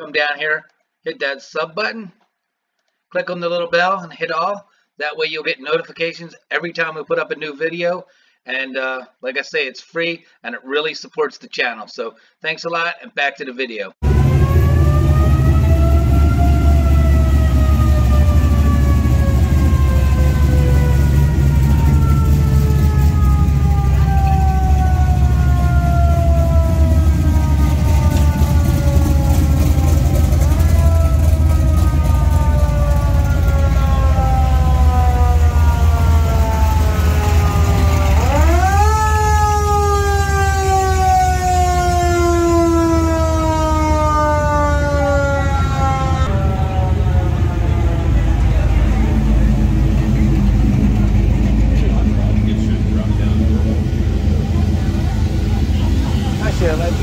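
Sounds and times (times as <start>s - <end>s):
siren winding up: 14.0s - 48.6s
car engines rumbling past: 14.0s - 57.0s.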